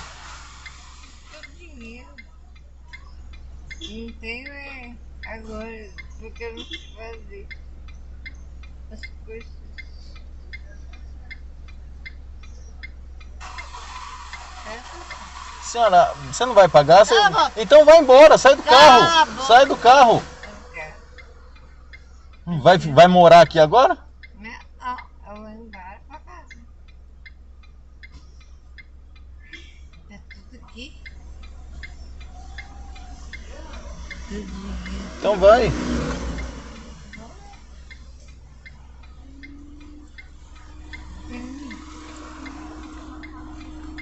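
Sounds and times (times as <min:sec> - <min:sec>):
steady rushing hiss: 0:00.0 - 0:01.8, 0:13.4 - 0:24.0, 0:31.0 - 0:39.3, 0:40.0 - 0:44.0
car turn signal ticking: 0:00.0 - 0:44.0.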